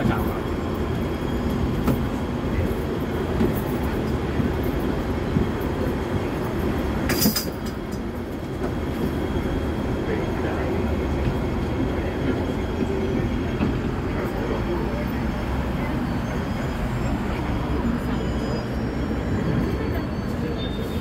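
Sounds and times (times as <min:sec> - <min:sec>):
tram rumbling: 0:00.0 - 0:21.0.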